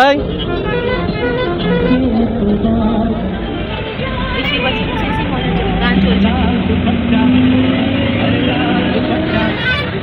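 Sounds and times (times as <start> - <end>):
bus engine rumbling: 0.0 - 10.0
passengers talking: 0.0 - 10.0.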